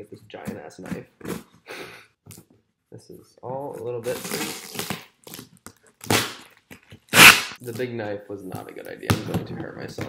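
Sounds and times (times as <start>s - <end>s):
knife cutting packing tape: 4.1s - 6.5s, 7.1s - 7.8s.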